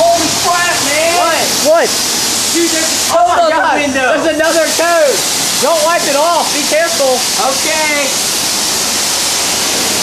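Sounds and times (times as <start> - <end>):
water spraying hiss: 0.0 - 10.0.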